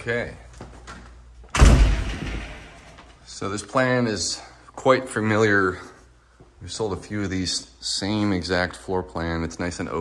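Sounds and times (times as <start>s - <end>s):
front door shutting with heavy thud: 1.5s - 3.1s.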